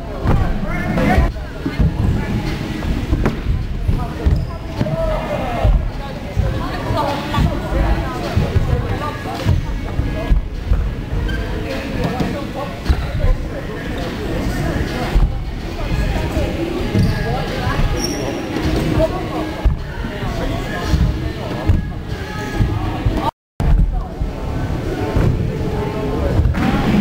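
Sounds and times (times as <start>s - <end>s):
voices chattering: 0.0s - 23.3s, 23.9s - 27.0s.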